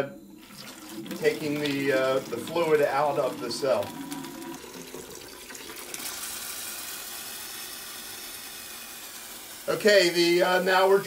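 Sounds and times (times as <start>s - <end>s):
water running through drain tube: 0.3s - 11.0s.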